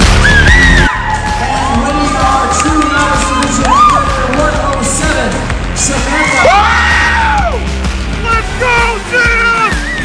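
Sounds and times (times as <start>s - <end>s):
crowd cheering and whooping: 0.0s - 4.5s, 6.0s - 7.8s, 9.7s - 10.0s
music playing: 0.0s - 10.0s.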